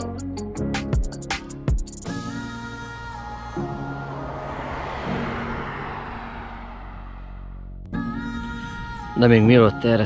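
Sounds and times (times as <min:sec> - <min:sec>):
vehicle passing by: 0:02.7 - 0:07.9.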